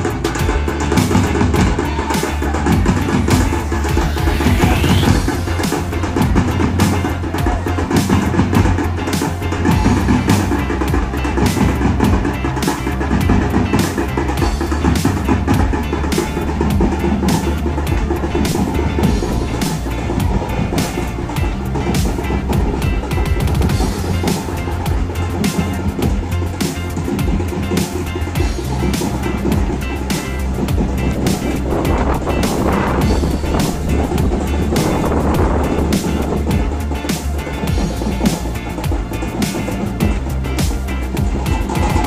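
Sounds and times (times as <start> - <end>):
hand drums playing dance rhythm: 0.0 - 42.0
large drum: 0.0 - 42.0.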